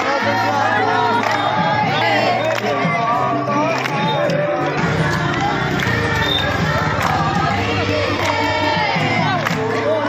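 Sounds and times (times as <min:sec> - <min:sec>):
crowd singing a devotional chant: 0:00.0 - 0:10.0
hand clapping: 0:01.1 - 0:01.5, 0:03.7 - 0:04.4, 0:08.2 - 0:08.5, 0:09.4 - 0:09.7.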